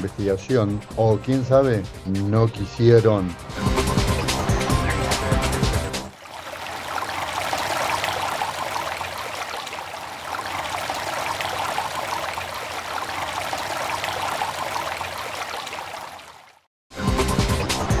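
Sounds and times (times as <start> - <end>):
running water rushing: 6.1 - 16.7.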